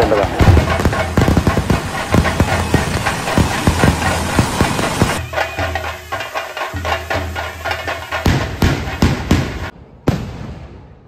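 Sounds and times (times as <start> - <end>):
fireworks bangs and crackles: 0.0 - 11.0.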